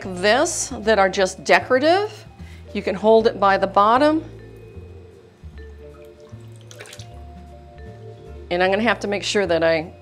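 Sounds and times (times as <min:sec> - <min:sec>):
liquid glaze sloshing: 0:05.7 - 0:07.5
short splash: 0:06.5 - 0:07.2.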